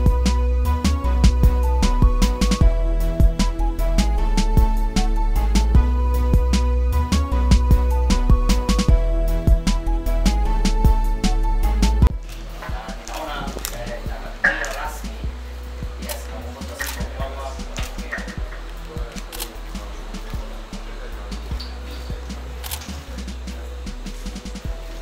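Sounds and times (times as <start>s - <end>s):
faint music: 0.0s - 25.0s
camera shutter clicks: 14.5s - 14.9s, 16.1s - 17.1s, 22.6s - 23.0s.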